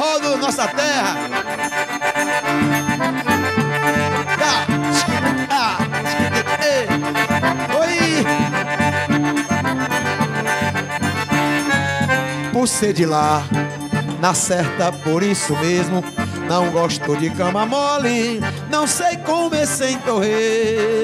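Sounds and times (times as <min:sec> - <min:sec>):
accordions playing: 0:00.0 - 0:21.0
person singing: 0:04.2 - 0:08.5.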